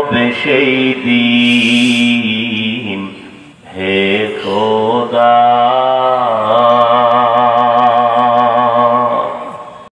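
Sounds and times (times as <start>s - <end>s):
man singing long note: 0.0s - 9.6s.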